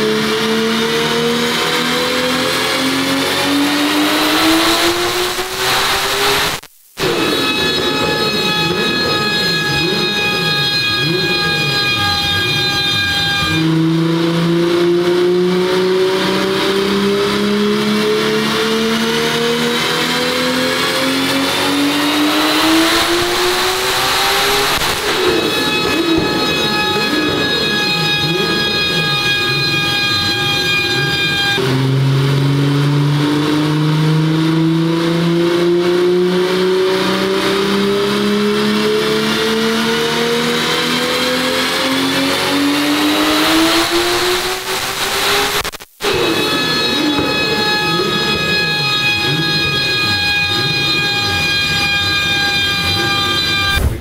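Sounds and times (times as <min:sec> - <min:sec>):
rush of noise: 0:00.0 - 0:38.4, 0:40.0 - 0:50.7
car engine revving at full throttle: 0:00.0 - 0:54.0.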